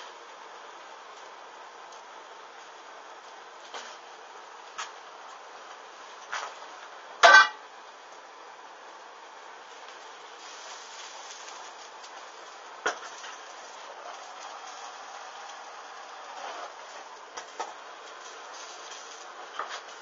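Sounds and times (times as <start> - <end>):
fabric burning with crackles: 0.0 - 20.0.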